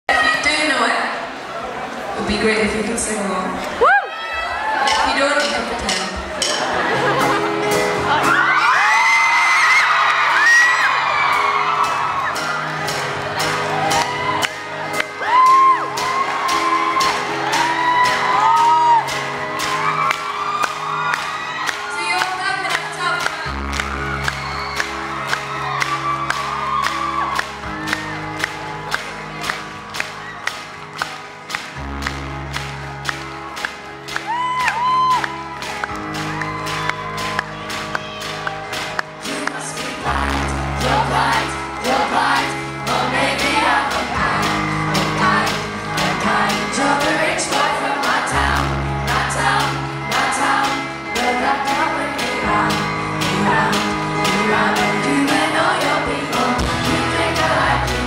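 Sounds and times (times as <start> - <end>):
live pop band playing: 2.2 - 58.0
crowd whooping: 3.7 - 22.8, 23.4 - 31.5, 33.3 - 39.0
audience clapping along: 8.2 - 40.2.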